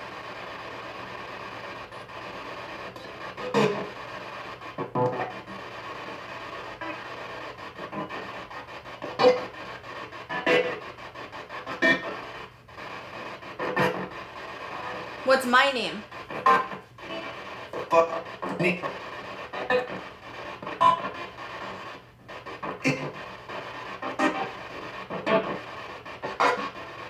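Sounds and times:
radio static: 0.0 - 27.0
snatches of broadcast sound: 0.0 - 27.0.

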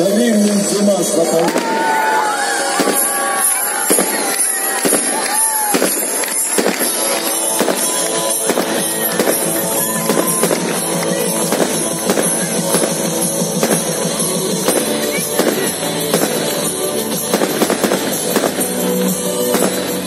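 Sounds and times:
music playing: 0.0 - 20.0
fireworks bangs and crackles: 0.1 - 20.0.

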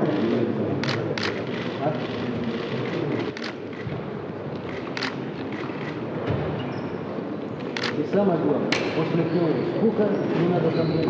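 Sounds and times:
people shuffling and murmuring: 0.0 - 11.0.

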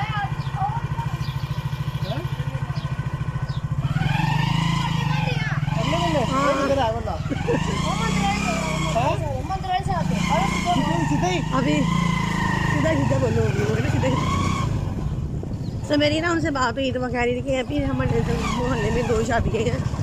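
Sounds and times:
small motorcycle engine: 0.0 - 20.0
voices: 0.0 - 20.0.

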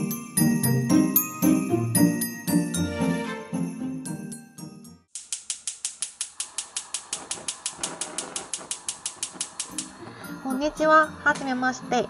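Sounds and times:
gas hob igniter clicking: 5.2 - 10.4.

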